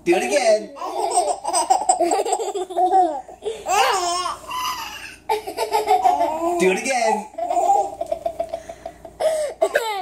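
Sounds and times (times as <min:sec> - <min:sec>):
baby and toddler laughing: 0:00.7 - 0:06.7, 0:07.3 - 0:10.0.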